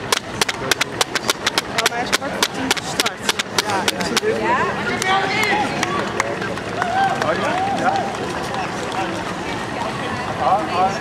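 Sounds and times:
runners' footfalls on road: 0.0 - 9.7.

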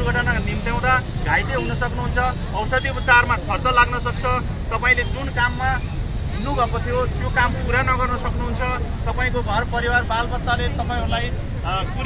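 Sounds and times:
low rumble of street traffic: 0.0 - 12.0
man speaking through megaphone: 0.0 - 12.0.

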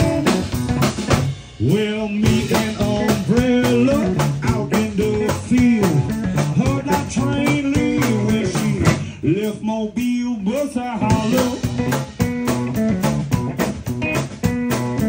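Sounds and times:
sliding guitar melody: 0.0 - 8.8, 11.0 - 15.0
live blues band: 0.0 - 15.0.

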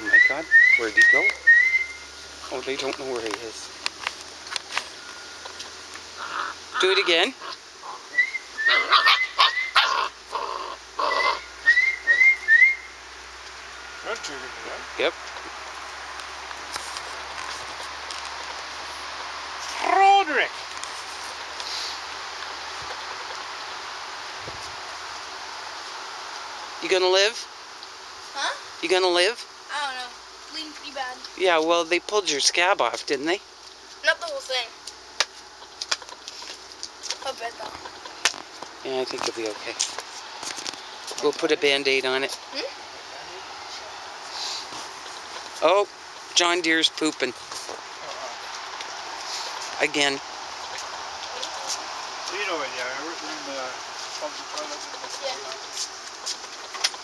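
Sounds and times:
person whistling chirps: 0.0 - 2.0, 11.7 - 12.9
low outdoor background: 0.0 - 57.0
puppies yipping and barking: 6.2 - 12.8.

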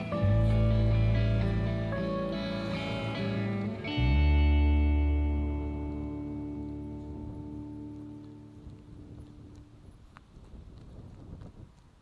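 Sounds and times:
footsteps on paved road: 0.0 - 12.0
wind rumble on microphone: 3.2 - 12.0.

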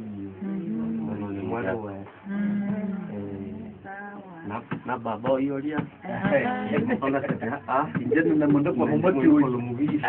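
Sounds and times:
murmur of voices talking: 0.0 - 10.0.

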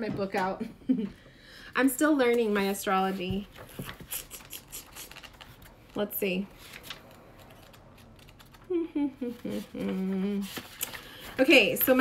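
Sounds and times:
woman laughing: 0.6 - 1.2, 8.7 - 10.4
book pages rustling: 2.9 - 8.7, 9.3 - 12.0.

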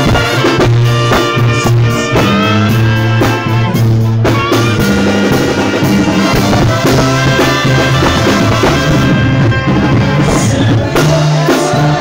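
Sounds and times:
brass band playing: 0.0 - 12.0
drums: 0.0 - 12.0
low bass line: 0.0 - 12.0
trumpets: 0.0 - 12.0.

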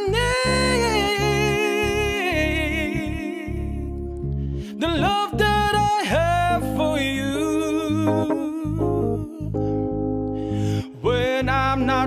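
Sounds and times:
man humming a melody: 0.0 - 4.1, 4.8 - 9.9
bass notes: 0.0 - 12.0
electric keyboard chords: 0.0 - 12.0.

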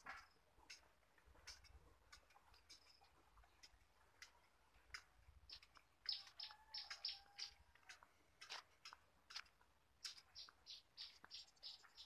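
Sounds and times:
small bird chirping: 2.5 - 7.7, 10.0 - 12.0.

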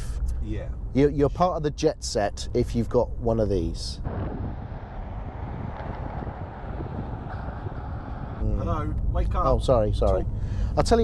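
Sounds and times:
car road noise on tarmac: 0.0 - 11.0
wind buffeting microphone: 3.8 - 10.6.

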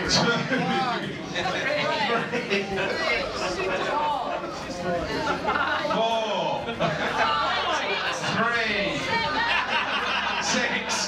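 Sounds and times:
overlapping group chatter: 0.0 - 11.0.

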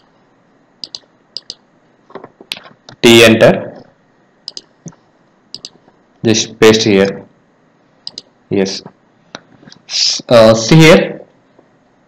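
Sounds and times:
computer mouse clicking: 0.8 - 1.6, 4.5 - 5.8, 8.0 - 8.3.

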